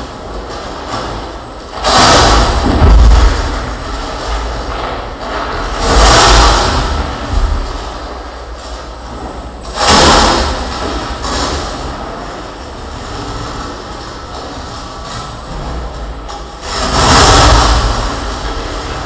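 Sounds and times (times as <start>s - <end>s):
distorted harsh noise: 0.0s - 19.0s
heavy low rumble: 0.0s - 19.0s.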